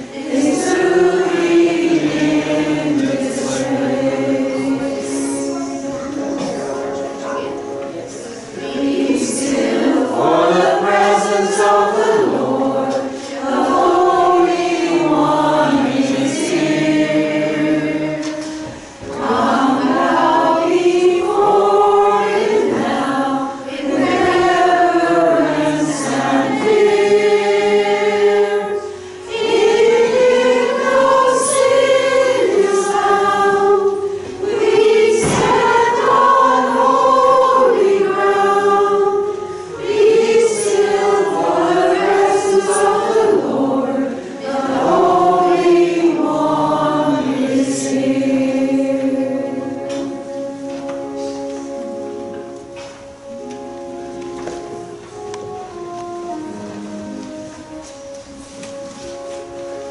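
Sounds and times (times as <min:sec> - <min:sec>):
church choir singing a hymn: 0:00.0 - 0:59.9.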